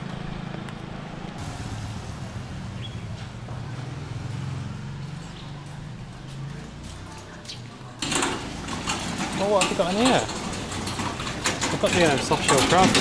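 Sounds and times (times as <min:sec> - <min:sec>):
vehicle engine hum: 0:00.0 - 0:13.0.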